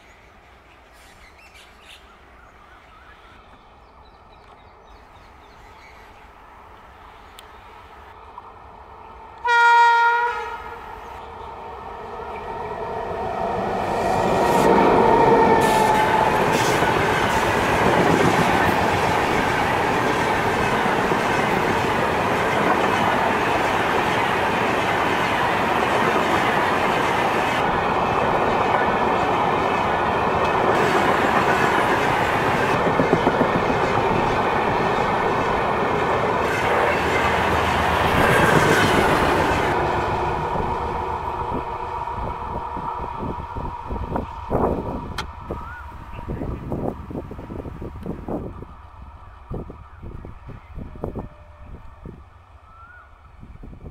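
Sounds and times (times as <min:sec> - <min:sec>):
train wheels clattering on rails: 0:28.3 - 0:39.8.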